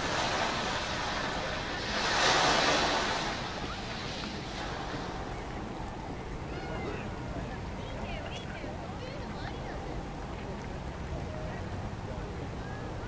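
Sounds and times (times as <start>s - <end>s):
rushing outdoor noise: 0.0s - 13.0s.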